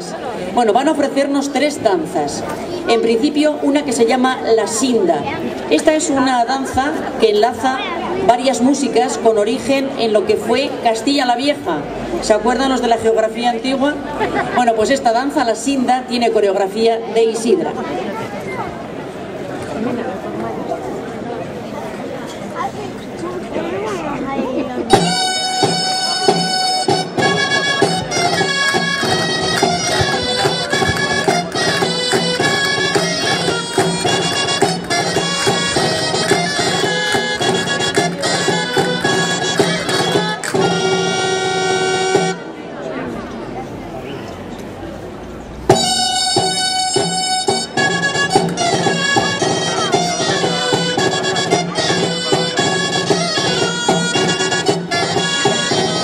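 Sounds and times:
steady drum beat: 24.8s - 42.4s
shrill reed pipes melody: 24.9s - 42.4s, 45.7s - 56.0s.

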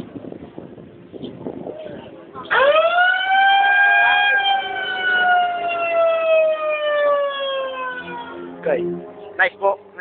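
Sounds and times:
siren wailing and winding down: 2.5s - 8.5s.

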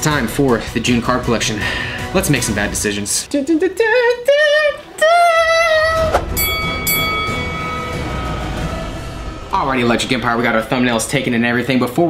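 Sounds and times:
low rumble: 5.4s - 12.0s
loud held falling note: 5.7s - 11.6s
high horn-like chord: 6.4s - 11.3s.

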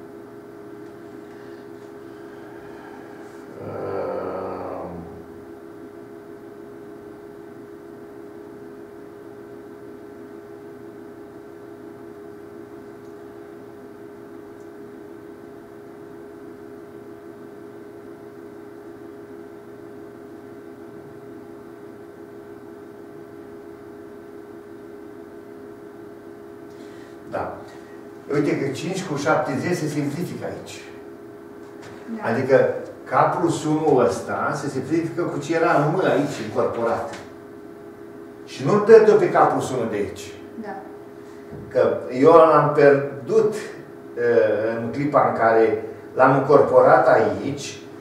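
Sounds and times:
steady electrical hum: 0.0s - 48.0s
man's wordless vocal sound: 3.4s - 5.2s.

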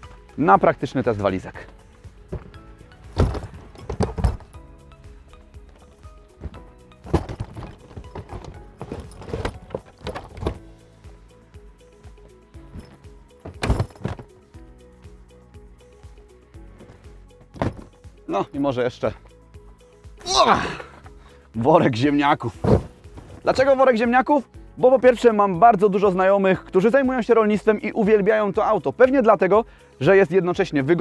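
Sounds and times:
background music: 0.0s - 31.0s
suitcases thudding and scraping: 1.6s - 10.8s, 12.3s - 14.5s, 16.6s - 18.1s, 22.4s - 23.8s.

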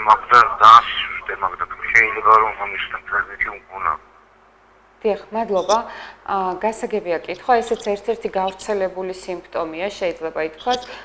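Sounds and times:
person talking over telephone-like line: 0.0s - 4.0s, 5.4s - 5.8s, 7.2s - 8.8s, 10.5s - 11.0s.

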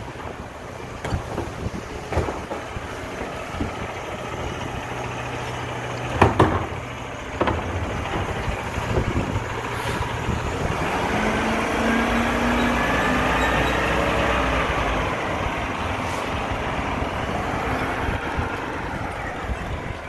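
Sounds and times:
garbage truck diesel engine passing: 0.0s - 20.0s.

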